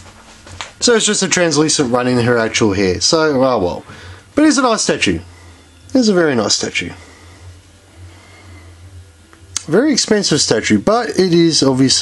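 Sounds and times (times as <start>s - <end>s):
faint background hiss: 0.0s - 12.0s
steady low hum: 0.0s - 12.0s.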